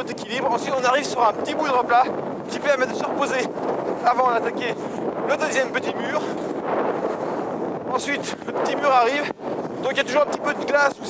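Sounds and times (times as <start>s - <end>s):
wind on microphone: 0.0s - 11.0s
skis sliding on snow: 0.6s - 11.0s.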